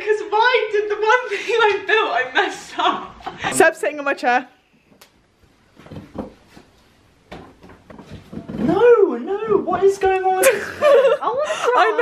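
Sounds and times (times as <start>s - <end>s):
wooden stool knocking and creaking: 5.7s - 10.2s.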